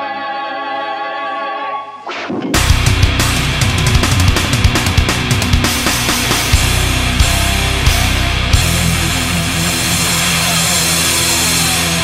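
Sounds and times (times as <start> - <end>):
heavily distorted metal drone: 2.4 - 12.0.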